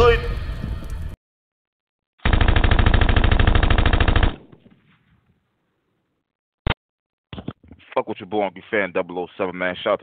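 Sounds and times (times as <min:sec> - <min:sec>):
rapid automatic gunfire: 0:02.2 - 0:04.4.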